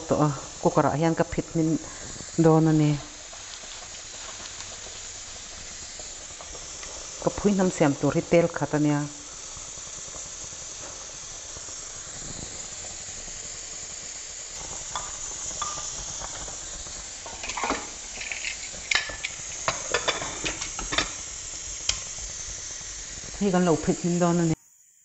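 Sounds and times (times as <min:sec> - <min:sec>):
leaves sizzling in a pot: 0:00.0 - 0:25.0.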